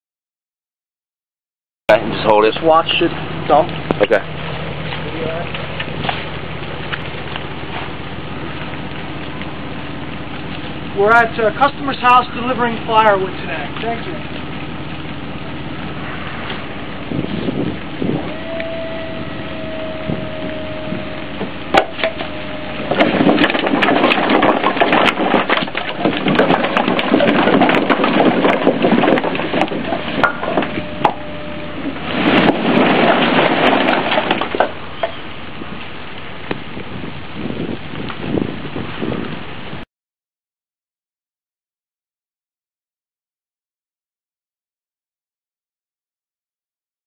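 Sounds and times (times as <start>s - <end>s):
truck engine throbbing: 1.9s - 36.5s
crackly hiss: 3.0s - 18.1s
firewood clattering onto pile: 21.7s - 31.2s, 31.9s - 35.3s.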